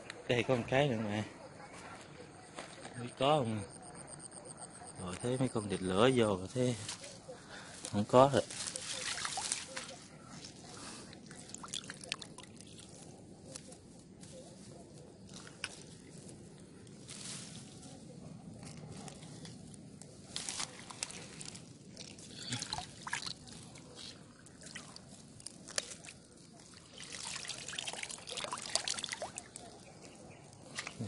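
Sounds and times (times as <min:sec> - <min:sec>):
dry grass rustling: 0:06.0 - 0:31.0
water trickling and sloshing: 0:08.4 - 0:13.1, 0:20.4 - 0:29.9.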